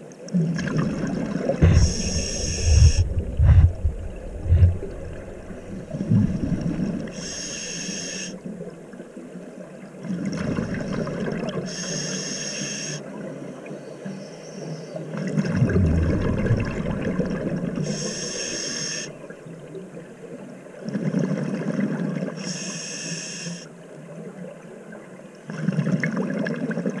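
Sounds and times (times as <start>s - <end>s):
exhaled bubbles gurgling underwater: 0.0s - 13.8s, 14.9s - 22.4s, 24.1s - 27.0s
regulator inhalation hiss: 1.6s - 3.2s, 7.1s - 8.4s, 11.7s - 13.0s, 17.8s - 19.2s, 22.4s - 23.7s.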